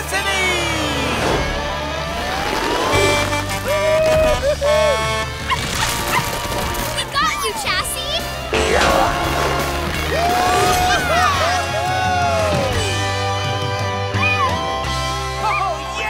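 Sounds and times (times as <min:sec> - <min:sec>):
cartoon score music: 0:00.1 - 0:16.0.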